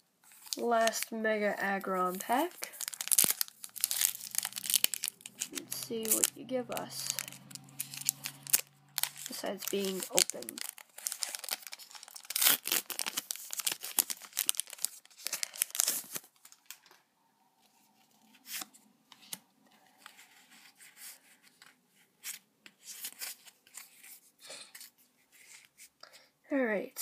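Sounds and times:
foil wrapper tearing and crinkling: 0.3 - 1.1, 2.1 - 16.9
cards being handled: 2.0 - 16.9, 18.4 - 19.4.

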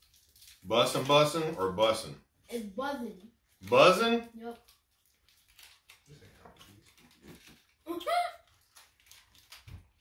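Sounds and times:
foil wrappers rustling: 0.0 - 10.0.

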